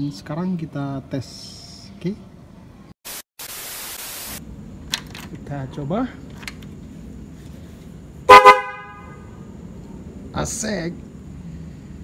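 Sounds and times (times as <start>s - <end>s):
motorcycle horn blast: 8.3s - 9.3s.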